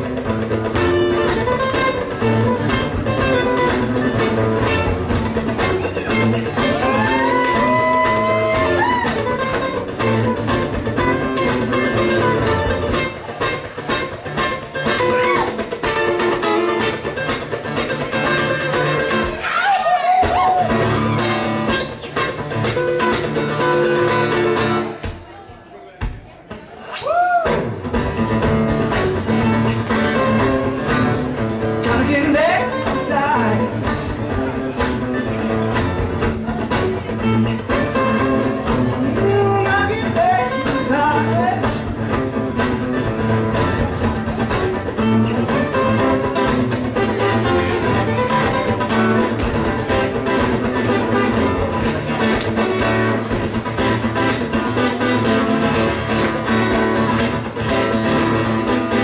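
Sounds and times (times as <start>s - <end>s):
acoustic guitar lead lines: 0.0s - 59.0s
acoustic guitar rhythm: 0.0s - 59.0s.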